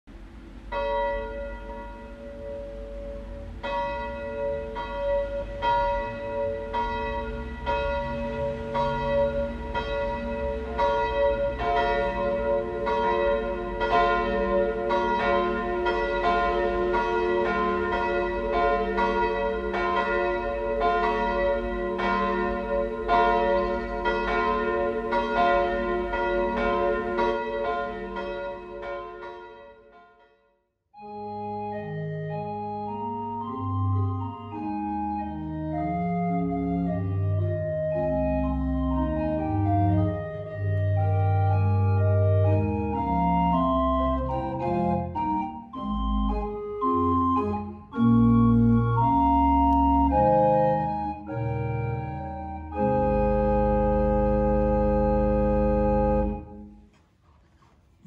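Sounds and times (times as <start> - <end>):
church bells ringing: 0.2 - 35.7, 36.3 - 56.8.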